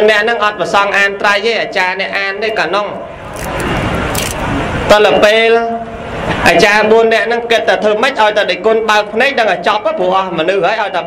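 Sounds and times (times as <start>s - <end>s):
passing road vehicle rushing: 3.0s - 5.0s.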